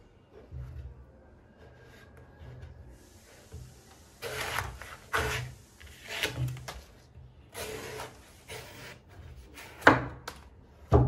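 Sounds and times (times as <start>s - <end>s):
knife rasping through husk: 4.2s - 6.5s.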